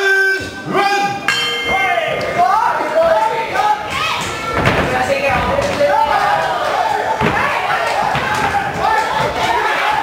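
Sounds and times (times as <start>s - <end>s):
people shouting: 0.0s - 4.6s, 5.8s - 10.0s.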